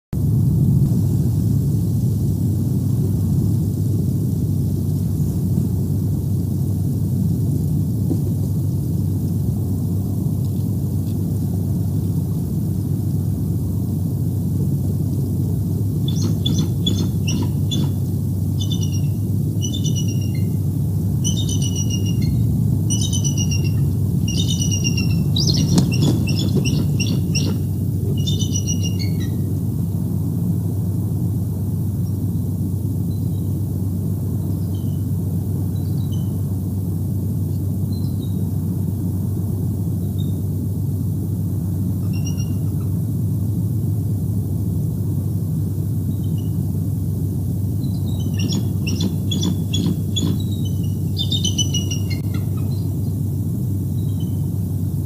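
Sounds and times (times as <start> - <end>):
steady low rumble: 0.1 - 55.0
eagle chattering calls: 15.9 - 29.6, 47.9 - 53.1.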